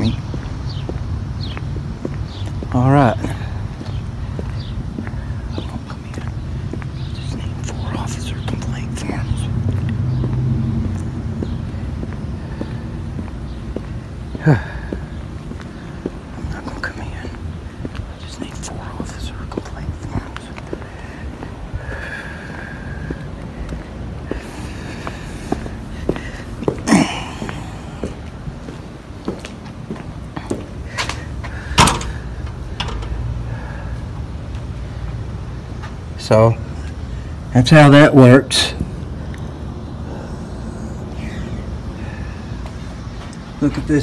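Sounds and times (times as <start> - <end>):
footsteps on pavement: 0.0 - 44.0
wind rumbling on microphone: 3.4 - 26.7.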